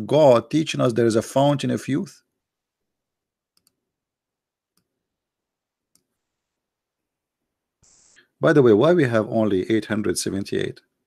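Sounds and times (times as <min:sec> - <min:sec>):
computer mouse clicks: 0:03.5 - 0:03.8.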